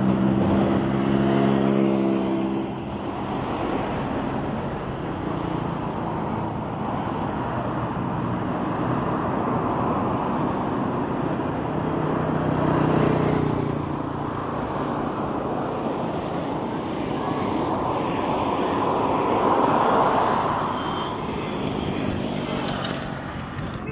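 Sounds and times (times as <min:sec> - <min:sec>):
tyre noise on road: 0:00.0 - 0:23.9
vehicle engines: 0:00.0 - 0:23.9.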